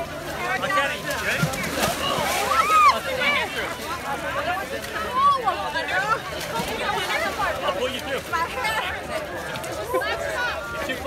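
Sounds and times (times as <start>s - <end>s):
crowd talking and calling out: 0.0s - 11.0s
water sloshing: 0.0s - 11.0s.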